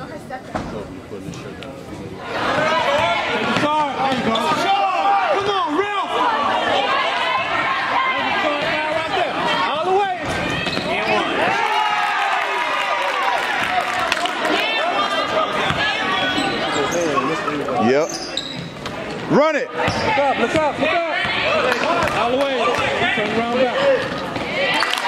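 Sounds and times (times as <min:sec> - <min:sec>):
voices echoing in gym: 0:00.0 - 0:25.0
sneakers squeaking: 0:02.5 - 0:04.8, 0:08.4 - 0:11.6, 0:15.2 - 0:24.6.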